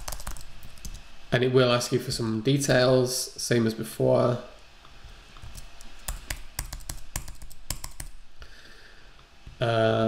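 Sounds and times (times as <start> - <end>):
computer keyboard typing: 0.0 - 1.0, 5.4 - 8.2.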